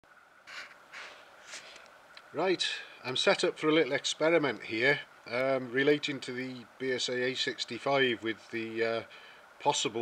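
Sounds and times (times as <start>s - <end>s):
faint breathing: 2.7s - 3.1s, 9.1s - 9.6s.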